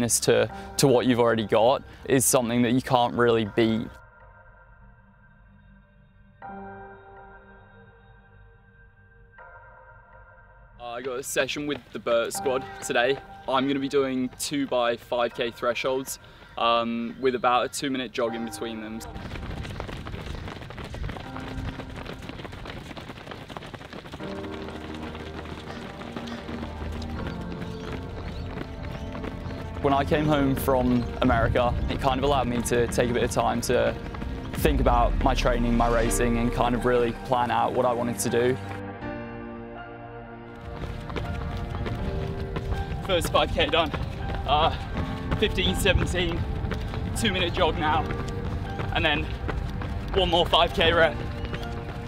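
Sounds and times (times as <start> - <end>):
background music: 0.0 - 23.2, 24.1 - 52.0
runners' footfalls on pavement: 11.6 - 36.0, 40.6 - 52.0
low rumble: 34.2 - 38.2.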